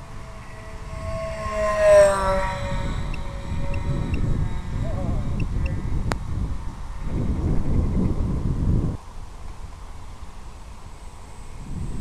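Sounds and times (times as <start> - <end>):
wind buffeting microphone: 0.0 - 9.6, 10.8 - 12.0.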